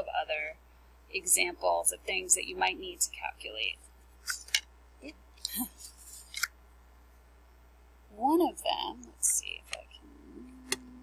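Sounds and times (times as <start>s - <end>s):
paper card sliding: 5.8s - 6.5s
card clicking on surface: 6.2s - 6.5s.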